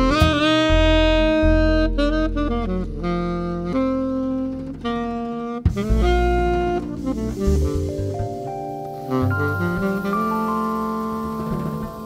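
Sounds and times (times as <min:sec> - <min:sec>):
double bass: 0:00.0 - 0:12.0
keyboard accompaniment: 0:00.0 - 0:12.0
tenor saxophone melody: 0:00.0 - 0:12.0.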